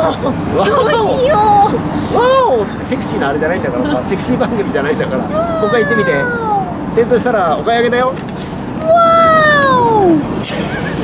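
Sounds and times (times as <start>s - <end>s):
woman's drawn-out exclamation: 5.3s - 6.8s, 8.8s - 10.2s.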